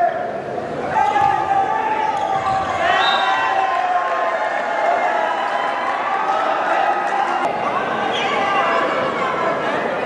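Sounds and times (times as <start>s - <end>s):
players and spectators shouting: 0.0s - 10.0s.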